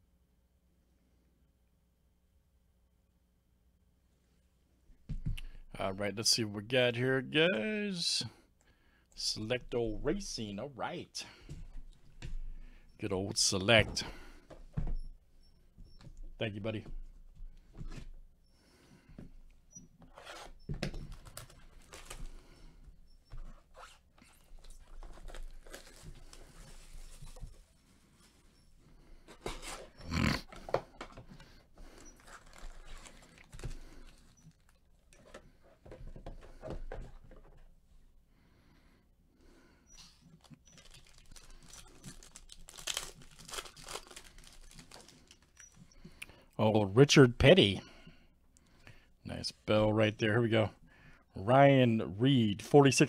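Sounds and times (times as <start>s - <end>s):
foil packs crinkling: 21.0s - 22.7s, 23.9s - 27.7s, 29.3s - 35.1s, 40.3s - 45.9s
packs being torn open: 24.6s - 26.6s, 32.2s - 34.8s, 40.4s - 45.6s.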